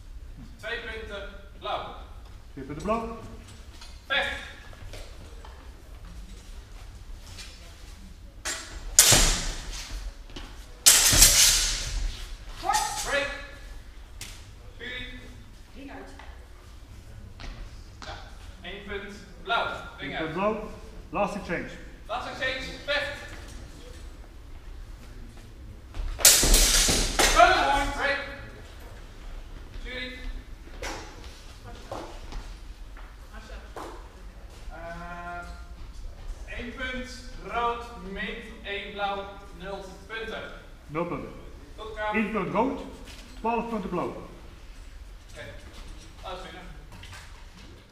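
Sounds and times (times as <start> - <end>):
sword strikes echoing: 8.5 - 9.8, 10.9 - 13.3, 26.2 - 27.8.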